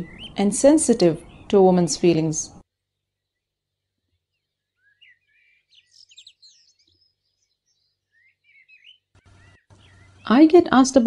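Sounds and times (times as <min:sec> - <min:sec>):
faint bird chirps: 0:00.0 - 0:00.4, 0:02.8 - 0:10.4.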